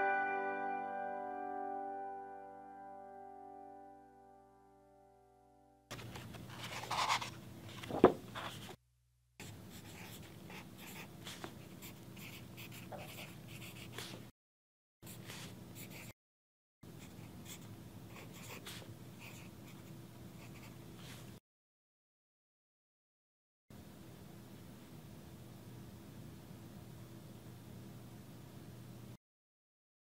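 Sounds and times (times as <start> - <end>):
pen scratching on paper: 6.5 - 8.8, 9.4 - 14.2, 15.0 - 16.1, 17.0 - 20.8.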